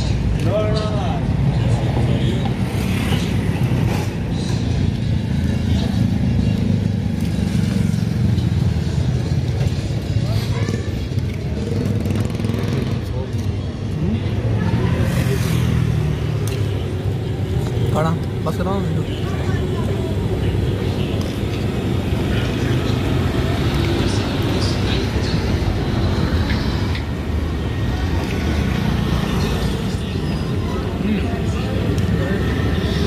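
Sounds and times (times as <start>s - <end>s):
men talking: 0.0s - 7.2s, 12.0s - 26.9s, 28.6s - 33.0s
road traffic rumble: 0.0s - 33.0s.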